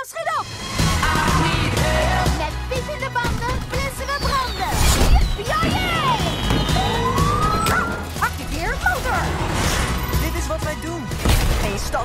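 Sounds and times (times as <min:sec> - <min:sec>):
background music: 0:00.0 - 0:12.0
rising whistle-like tone: 0:04.0 - 0:08.0.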